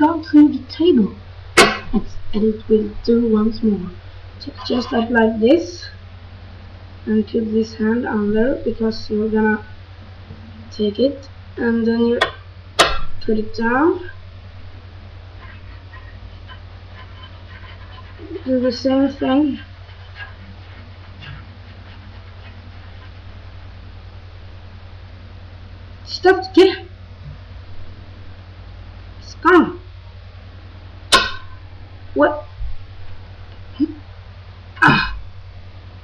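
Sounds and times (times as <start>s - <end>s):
low room hum: 0.0s - 36.0s
person making wordless vocal sounds: 34.8s - 35.2s.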